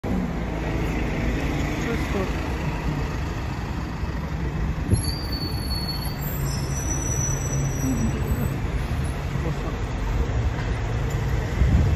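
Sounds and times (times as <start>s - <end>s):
bus engine rumbling: 0.0s - 11.9s
street traffic: 0.0s - 11.9s.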